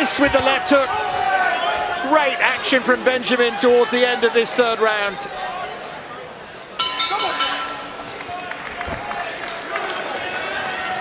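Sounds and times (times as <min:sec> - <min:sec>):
arena crowd shouting: 0:00.0 - 0:11.0
boxing ring bell struck: 0:06.8 - 0:08.2.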